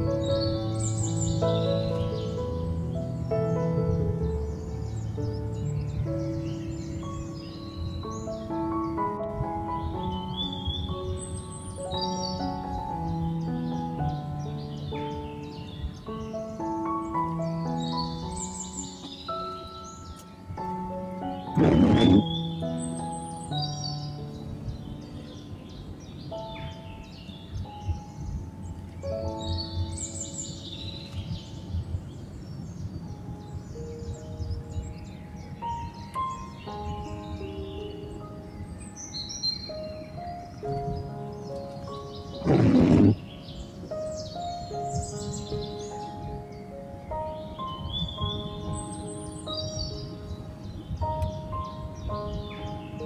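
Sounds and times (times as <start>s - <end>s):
birds chirping: 0.0s - 53.0s
slow instrumental music: 0.0s - 53.0s
short loud burst: 42.4s - 43.2s.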